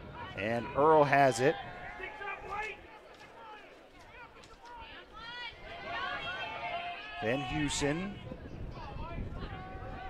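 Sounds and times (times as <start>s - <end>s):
distant voices shouting: 0.0s - 10.0s.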